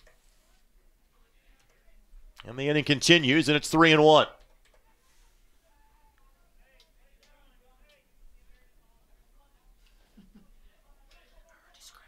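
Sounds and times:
faint distant voices: 4.2 - 12.0.

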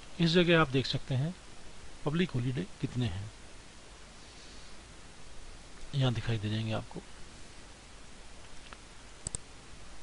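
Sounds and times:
faint steady hiss: 0.0 - 10.0
computer mouse clicks: 8.7 - 9.4.

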